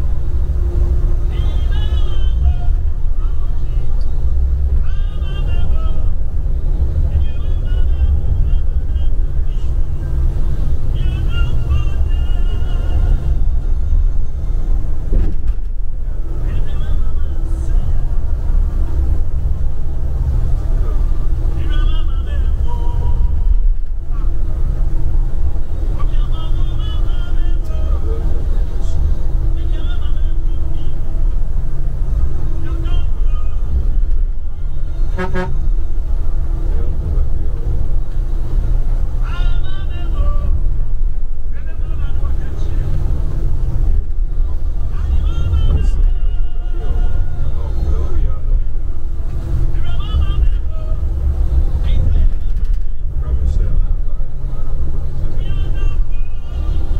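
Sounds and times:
bus engine and tyres rumbling: 0.0 - 56.9
music with singing voice: 0.8 - 14.5, 25.7 - 36.3, 39.0 - 43.4, 44.4 - 48.5, 49.3 - 56.9.

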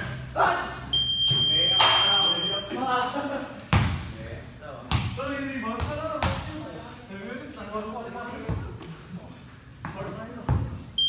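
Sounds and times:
high-pitched beep: 0.9 - 2.7
basketball bouncing: 4.9 - 5.2.

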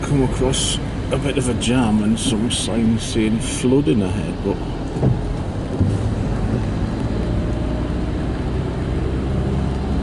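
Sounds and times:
car tyres on wet road: 0.0 - 10.0.

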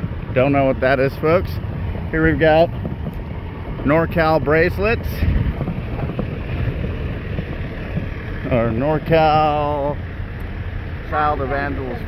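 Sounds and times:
wind buffeting microphone: 0.0 - 10.3
outdoor street noise: 0.0 - 12.0.

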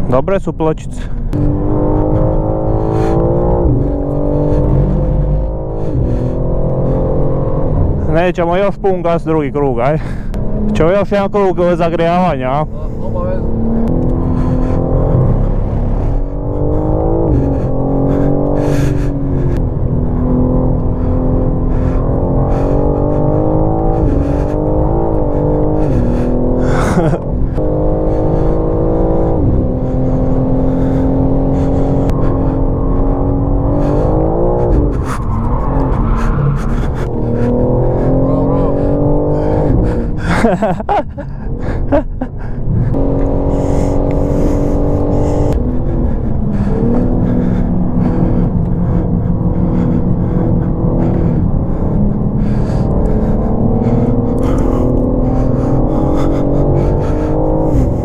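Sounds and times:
car engine revving in cabin: 0.0 - 58.0.

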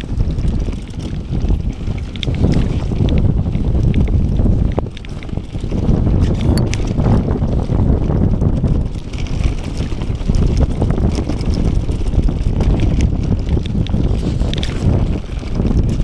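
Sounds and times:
bike rattling over bumps: 0.0 - 16.0
bike tyres on dirt: 0.0 - 16.0
wind rushing over microphone: 0.0 - 16.0.

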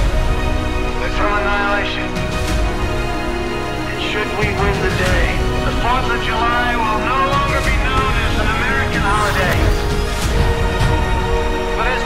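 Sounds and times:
cinematic film score: 0.0 - 12.0.

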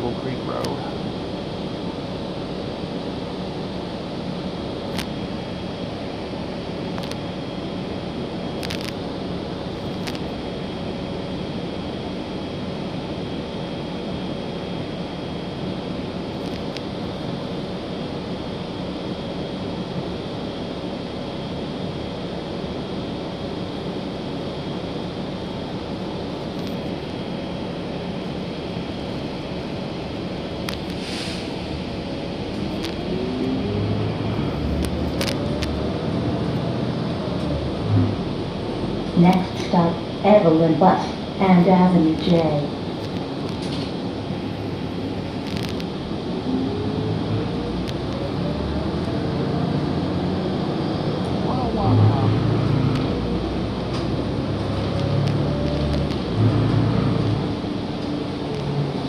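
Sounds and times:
bus engine and road rumble: 0.0 - 59.0
rising whine: 31.5 - 59.0.

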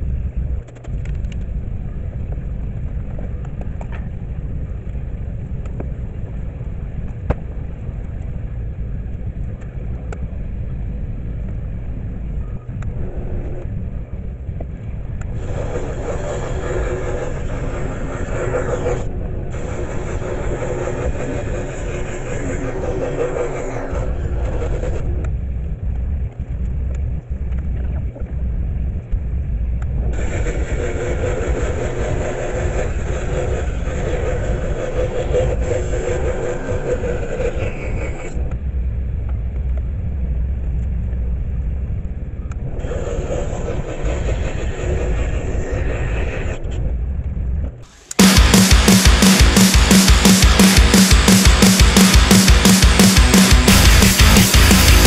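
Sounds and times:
saw blade cutting wood: 15.4 - 24.9, 47.9 - 55.0.

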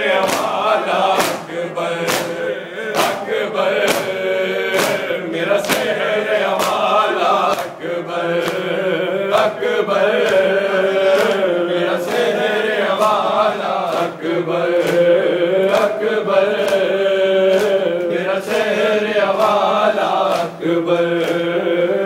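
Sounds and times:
men chanting in unison: 0.0 - 22.0
hand slaps on bare chests: 0.1 - 8.8, 12.1 - 18.6, 19.3 - 20.6, 21.2 - 21.5.

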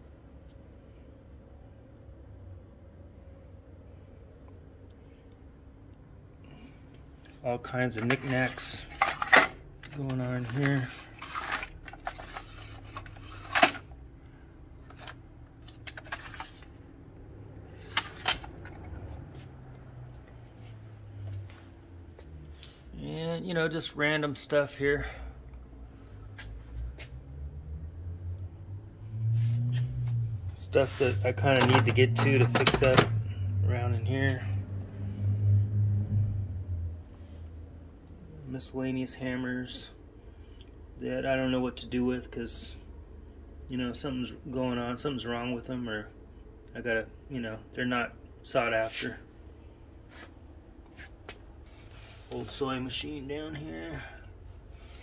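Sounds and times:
small metal parts rattling: 8.0 - 13.8
plastic drawers sliding and knocking: 31.4 - 33.2.

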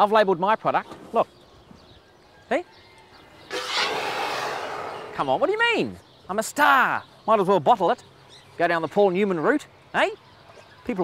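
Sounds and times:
elephant blowing air through trunk: 3.5 - 5.2.

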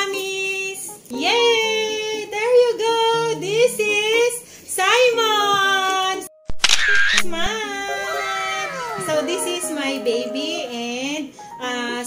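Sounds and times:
camera shutter-like burst: 6.5 - 7.5
sharp click: 6.5 - 7.5
background music with singing: 7.5 - 12.0.

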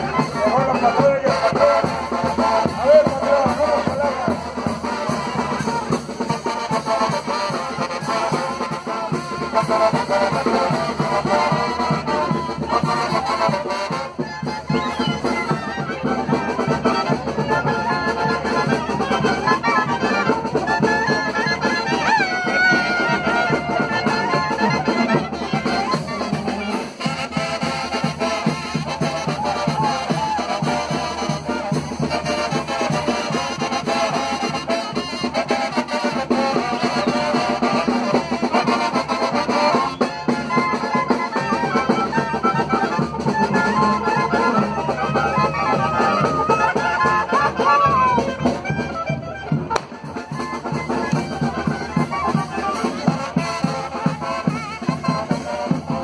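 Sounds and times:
trumpets: 0.0 - 56.0.

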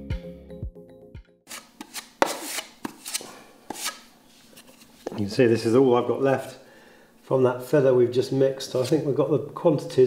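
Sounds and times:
background music with beat: 0.0 - 1.4
knife scraping wet plaster: 1.5 - 4.1.

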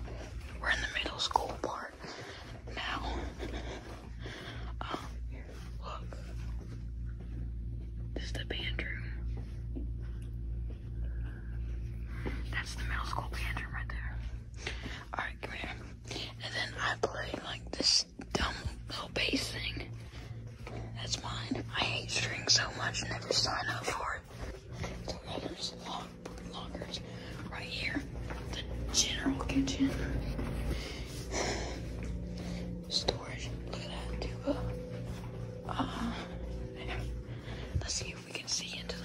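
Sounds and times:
steady low hum: 0.0 - 39.0
people whispering: 0.6 - 6.4, 12.4 - 14.2, 20.6 - 30.6, 31.2 - 39.0.

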